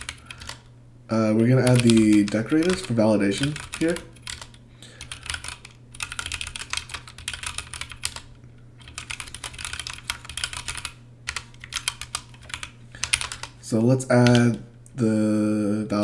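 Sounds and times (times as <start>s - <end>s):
computer keyboard typing: 0.0s - 0.7s, 1.5s - 13.6s, 14.2s - 14.6s.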